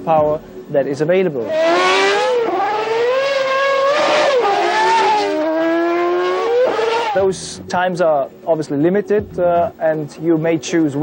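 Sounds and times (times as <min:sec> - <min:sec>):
race car engine screaming past: 0:01.5 - 0:07.2.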